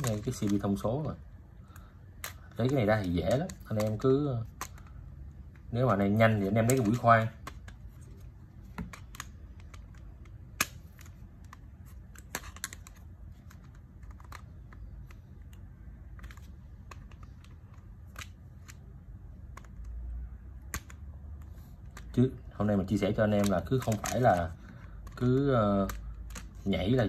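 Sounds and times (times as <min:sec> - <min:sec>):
low steady hum: 0:00.0 - 0:27.0
plastic clicks and taps: 0:06.5 - 0:08.0, 0:08.6 - 0:20.0, 0:20.6 - 0:22.2.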